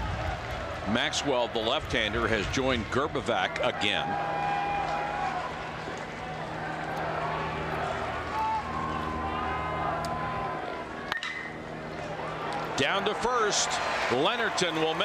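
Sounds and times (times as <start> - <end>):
ballpark crowd noise: 0.0 - 15.0
long held tones: 6.3 - 12.6
metal bat hitting ball: 11.1 - 11.6.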